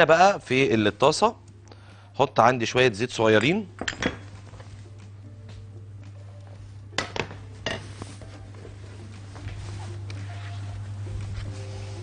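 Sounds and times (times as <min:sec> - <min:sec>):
cookware and glass clinking: 0:03.8 - 0:04.3, 0:07.0 - 0:08.0.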